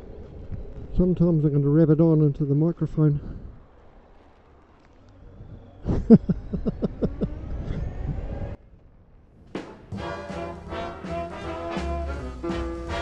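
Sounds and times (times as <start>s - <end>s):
man laughing: 5.8s - 8.0s
swing music with brass: 9.9s - 13.0s.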